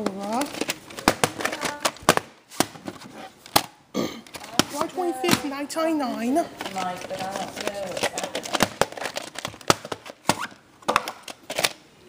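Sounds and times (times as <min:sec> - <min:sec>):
plastic cassettes clicking: 0:00.0 - 0:05.5, 0:06.1 - 0:11.8.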